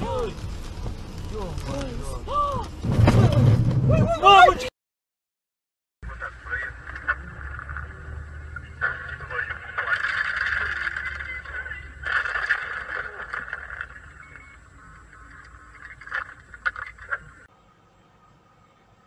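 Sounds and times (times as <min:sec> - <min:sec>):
low road rumble: 0:00.0 - 0:04.7, 0:06.0 - 0:19.0
car crash impacts: 0:02.6 - 0:04.2
voices: 0:06.0 - 0:17.5.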